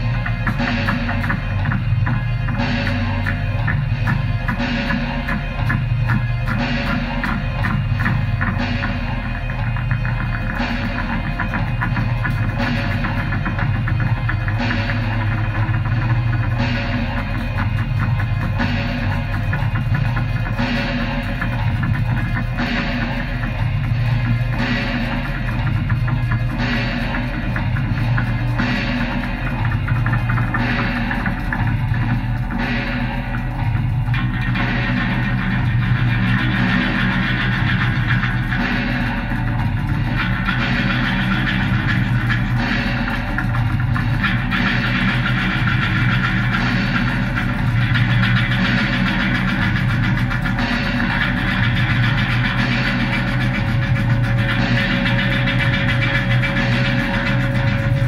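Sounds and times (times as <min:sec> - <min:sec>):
constant low hum: 0:00.0 - 0:58.0
low pulsing bass: 0:00.0 - 0:58.0.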